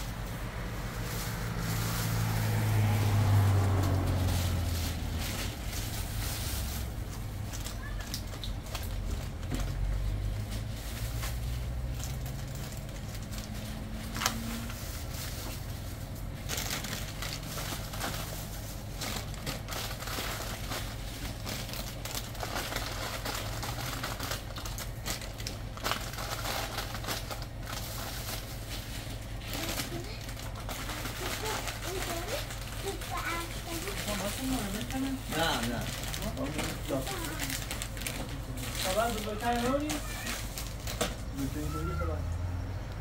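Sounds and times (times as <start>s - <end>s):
low hum: 0.0s - 31.7s
plastic wrappers crinkling: 0.0s - 42.1s.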